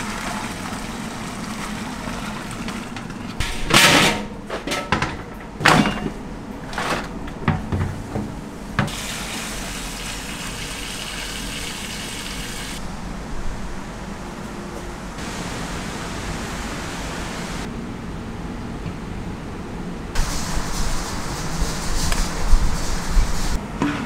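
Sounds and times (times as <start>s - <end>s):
water running from a hose: 0.0s - 3.0s, 8.9s - 12.8s
broth boiling hard: 0.0s - 3.4s, 8.9s - 12.8s.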